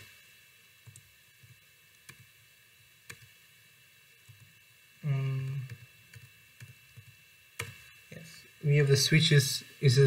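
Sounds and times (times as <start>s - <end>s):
faint ticks and clicks: 0.8s - 3.4s.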